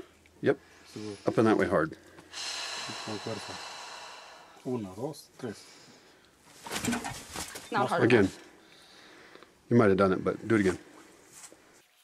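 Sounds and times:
woman forceful breath out: 0:02.3 - 0:04.8.

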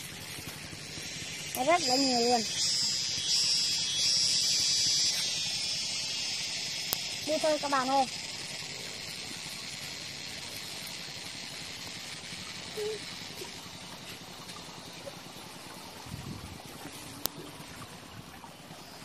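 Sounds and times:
outdoor background hiss: 0:00.0 - 0:19.0.

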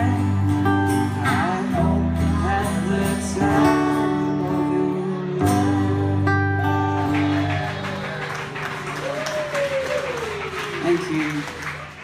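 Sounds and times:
acoustic guitars strumming: 0:00.0 - 0:09.6.

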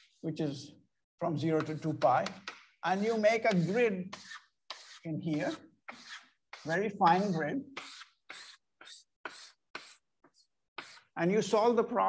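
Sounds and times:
chalk scratching on chalkboard: 0:01.4 - 0:11.2.

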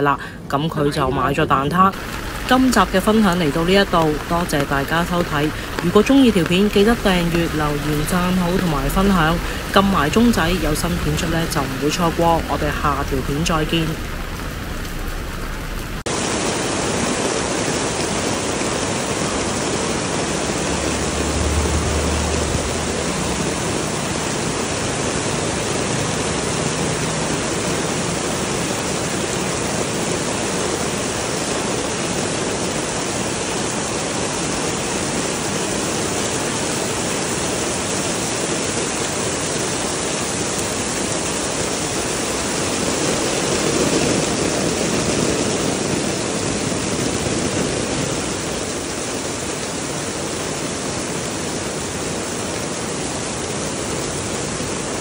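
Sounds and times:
heavy rain on pavement: 0:00.0 - 0:55.0.

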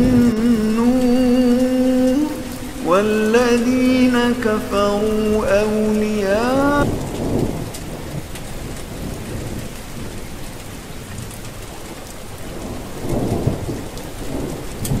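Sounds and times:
steady rain falling: 0:00.0 - 0:15.0
thunder rumbling: 0:00.0 - 0:15.0.

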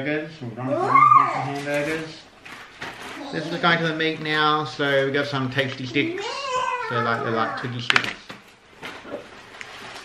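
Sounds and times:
plastic wrapping rustling: 0:01.4 - 0:10.0.

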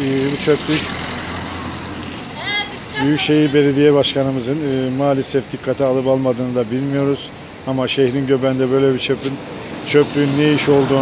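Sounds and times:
car passing close by: 0:00.0 - 0:03.0, 0:09.4 - 0:11.0.

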